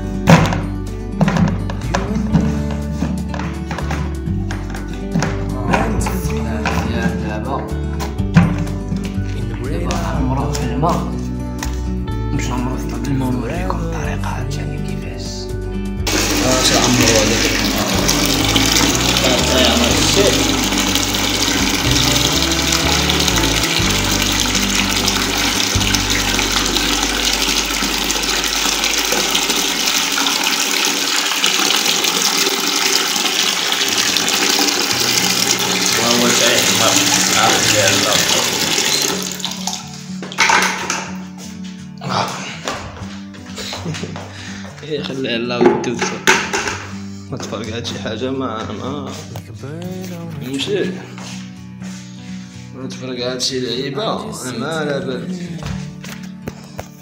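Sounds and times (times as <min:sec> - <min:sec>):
music: 0:00.0 - 0:57.0
water pouring into plastic bucket: 0:16.1 - 0:40.8.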